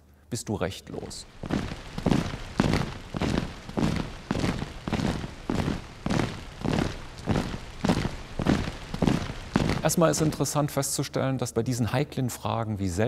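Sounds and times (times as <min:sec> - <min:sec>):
heavy rhythmic thuds: 0:01.2 - 0:10.6.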